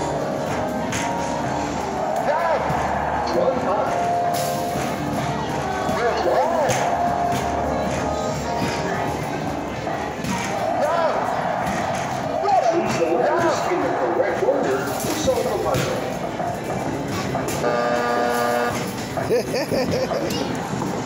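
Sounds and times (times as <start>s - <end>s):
arcade music: 0.0s - 20.9s
electronic buzzer: 17.6s - 18.9s.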